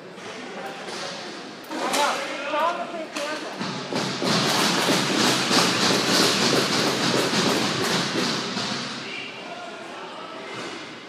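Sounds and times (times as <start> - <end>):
skate wheels rolling on plastic floor: 3.8 - 8.6.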